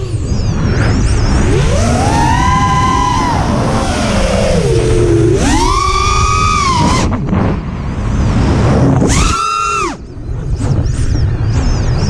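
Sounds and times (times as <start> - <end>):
drone motors whining: 0.0 - 12.0
wind rush on microphone: 0.0 - 12.0.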